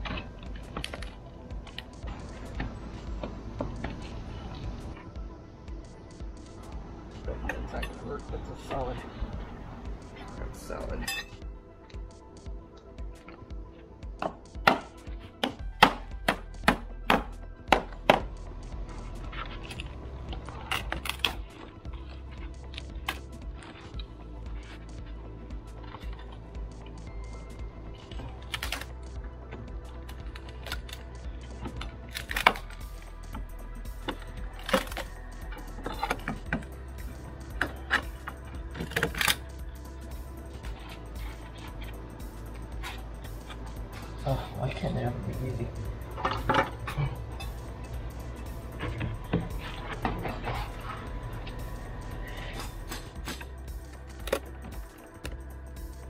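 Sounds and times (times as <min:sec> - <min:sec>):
background music: 0:00.0 - 0:56.0
hammer striking wooden board: 0:14.2 - 0:18.3.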